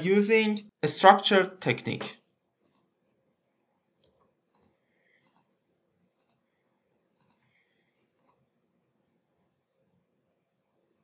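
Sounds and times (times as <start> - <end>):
computer mouse clicks: 2.6 - 2.9, 4.0 - 5.6, 6.2 - 6.5, 7.2 - 7.6, 8.2 - 8.5.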